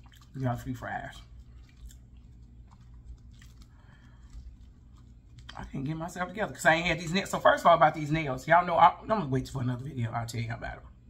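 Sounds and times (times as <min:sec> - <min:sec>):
chewing fries with crunches: 0:00.0 - 0:05.9.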